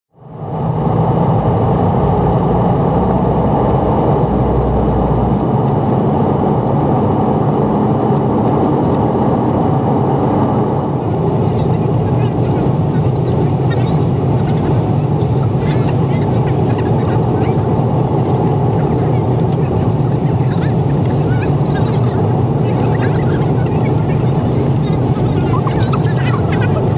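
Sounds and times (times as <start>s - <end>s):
jet engines roaring in cabin: 0.2s - 26.9s.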